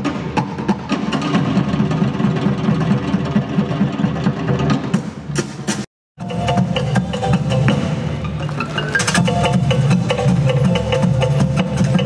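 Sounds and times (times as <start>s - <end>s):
drum ensemble fast rhythm: 0.0s - 8.2s, 8.9s - 12.0s.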